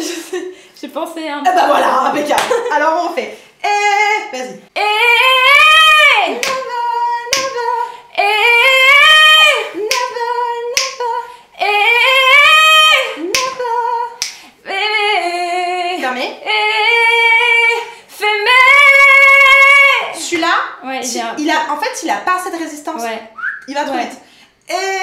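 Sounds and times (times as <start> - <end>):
women singing vocal exercise: 3.5 - 21.4, 23.0 - 25.0.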